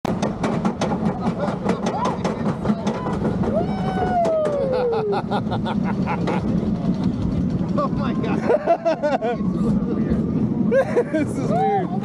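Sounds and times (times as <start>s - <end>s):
roller coaster train rumbling: 0.1s - 12.0s.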